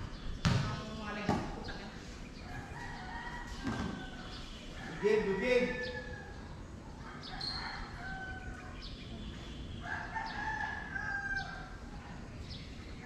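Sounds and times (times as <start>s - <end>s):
rooster crowing: 2.4s - 8.8s, 9.8s - 11.8s.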